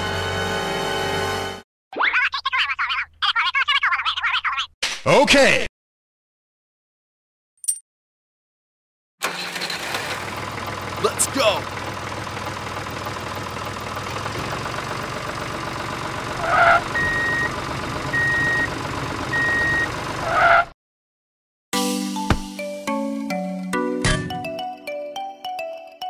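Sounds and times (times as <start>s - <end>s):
tractor engine running: 9.2s - 20.6s
reversing beeps: 17.0s - 17.5s, 18.1s - 18.7s, 19.3s - 19.9s
short loud thud: 22.3s - 22.5s.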